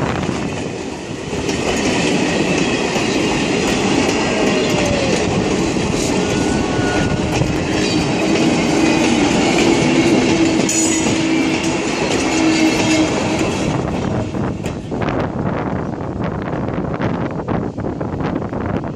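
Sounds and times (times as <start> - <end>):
train wheels clattering on rails: 0.0 - 15.4
wheels squealing: 4.2 - 13.8.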